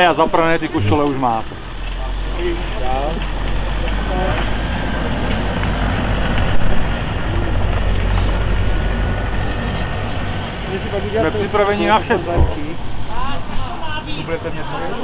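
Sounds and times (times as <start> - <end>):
faint voices talking: 0.0 - 15.0.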